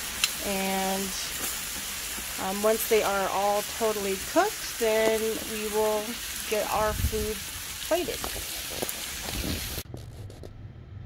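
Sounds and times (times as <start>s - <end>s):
meat sizzling on a grill: 0.0s - 9.9s.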